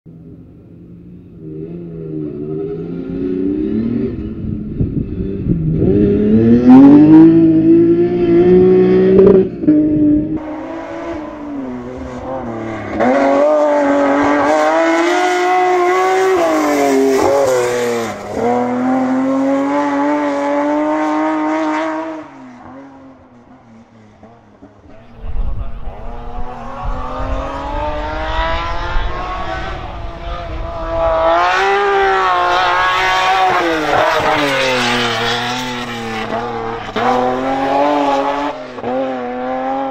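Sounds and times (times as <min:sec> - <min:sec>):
rally car engine revving: 0:01.4 - 0:39.9.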